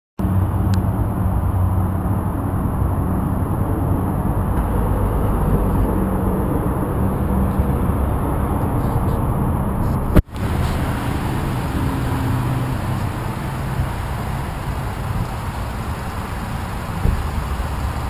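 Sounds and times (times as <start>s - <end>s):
car engine idling: 2.7s - 18.0s.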